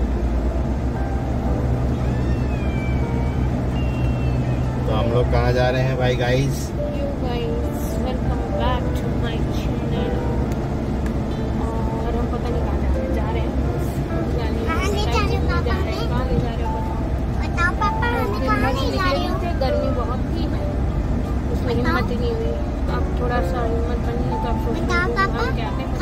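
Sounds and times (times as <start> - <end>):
car cabin rumble: 0.0 - 26.0.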